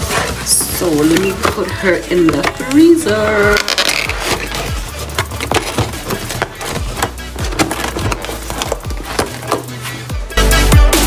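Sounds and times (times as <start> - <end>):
cardboard box crackling: 0.0 - 10.0
background music with low bass: 0.0 - 11.0.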